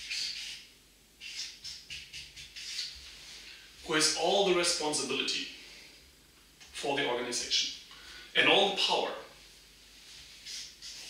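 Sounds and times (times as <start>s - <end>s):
marker squeaking on paper: 0.0s - 3.1s, 10.4s - 11.0s.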